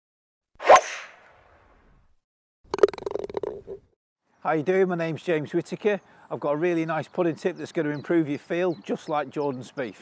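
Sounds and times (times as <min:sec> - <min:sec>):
swish: 0:00.6 - 0:01.4.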